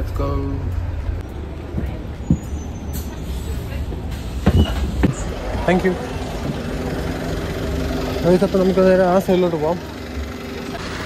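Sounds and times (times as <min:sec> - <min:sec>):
bus engine rumbling: 0:00.0 - 0:11.0.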